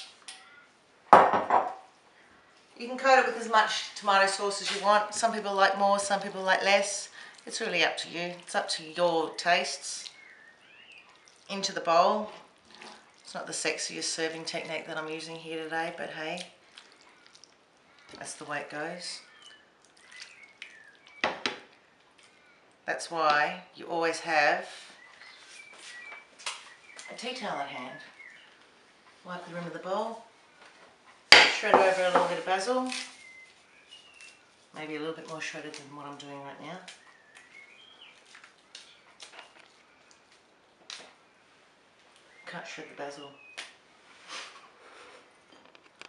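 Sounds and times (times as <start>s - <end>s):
soft crackles: 9.9s - 13.6s, 16.2s - 18.5s, 28.0s - 42.4s
basil leaves tearing: 32.0s - 33.4s.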